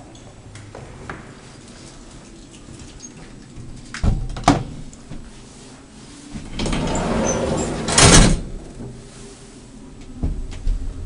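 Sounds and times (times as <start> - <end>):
elevator door sliding: 4.4 - 9.6
elevator door banging: 6.5 - 8.7.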